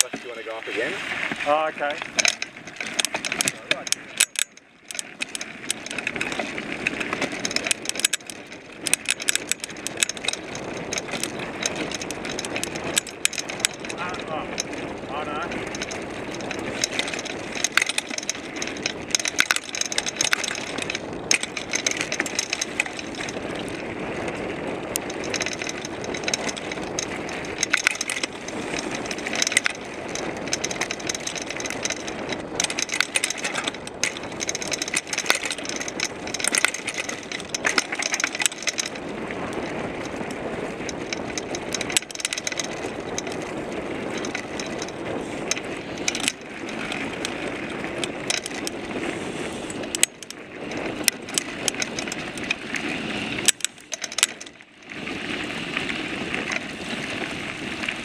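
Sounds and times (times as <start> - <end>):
bike rattles and clicks: 0.0 - 58.0
bike tyre riding noise: 0.0 - 58.0.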